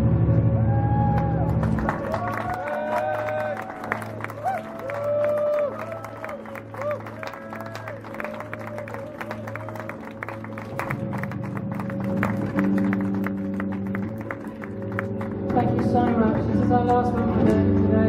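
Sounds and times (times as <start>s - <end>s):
bass guitar line: 0.0s - 18.0s.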